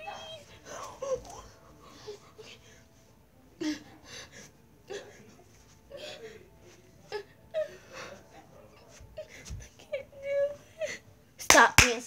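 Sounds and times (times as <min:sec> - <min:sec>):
girl whimpering: 0:00.0 - 0:02.6.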